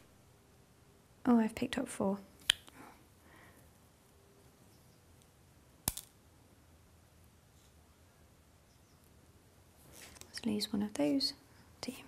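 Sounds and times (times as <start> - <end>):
beads clicking together: 5.8 - 6.2.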